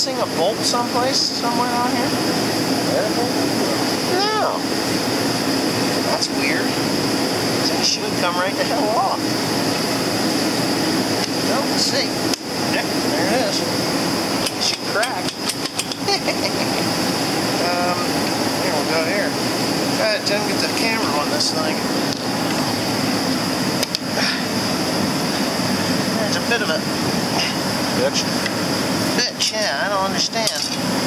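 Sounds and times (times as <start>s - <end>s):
metal tools clinking on metal: 30.4s - 30.8s.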